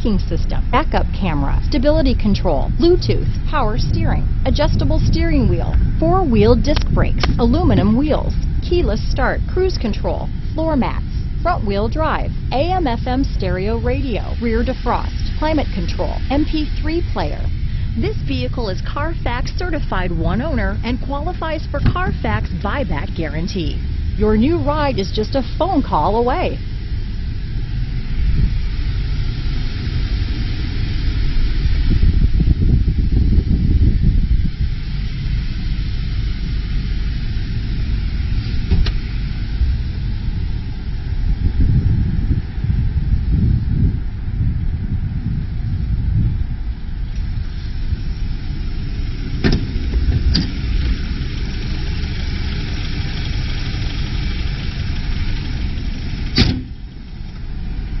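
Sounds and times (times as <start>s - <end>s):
wind buffeting microphone: 0.0s - 58.0s
sharp knocks: 56.4s - 56.7s.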